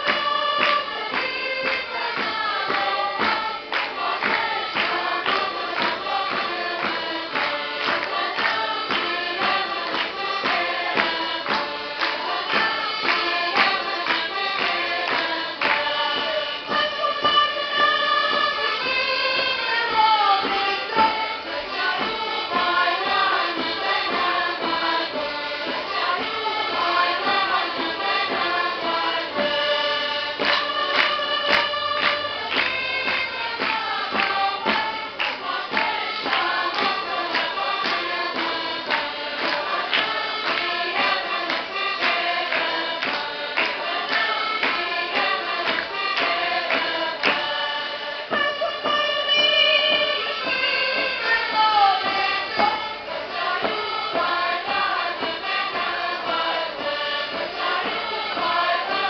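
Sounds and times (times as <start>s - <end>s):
group of voices singing: 0.0s - 59.0s
percussive beat: 0.0s - 59.0s.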